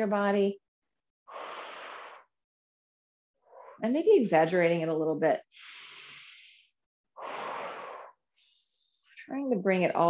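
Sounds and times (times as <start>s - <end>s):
woman breathing heavily: 1.3s - 2.3s, 5.5s - 9.2s
high hiss of air: 5.6s - 6.7s.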